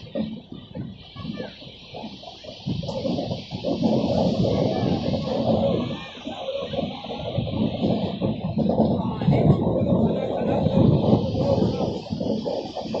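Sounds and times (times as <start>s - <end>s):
train running inside carriage: 0.0s - 13.0s.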